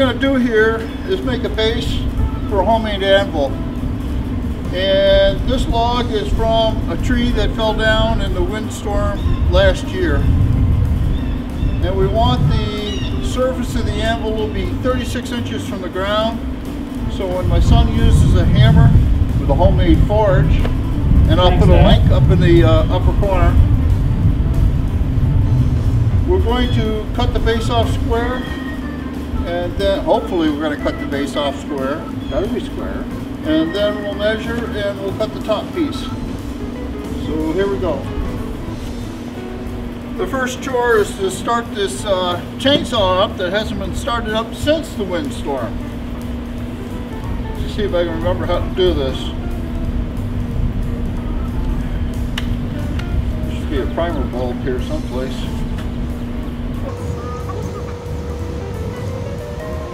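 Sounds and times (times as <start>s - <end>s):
loud low rumble: 0.0s - 31.1s, 45.6s - 59.9s.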